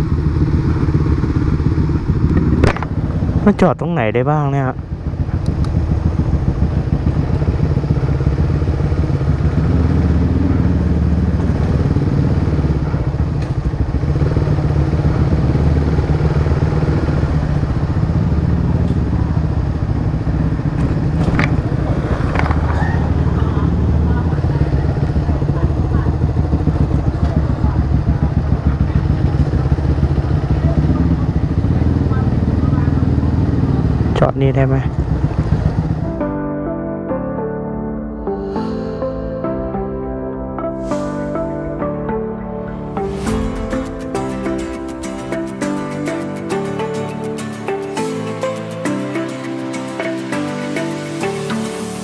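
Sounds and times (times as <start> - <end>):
motorcycle engine droning: 0.0 - 47.8.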